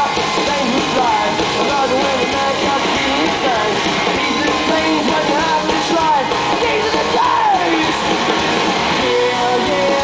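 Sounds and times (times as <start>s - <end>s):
audience voices: 0.0s - 10.0s
live rock band playing: 0.0s - 10.0s.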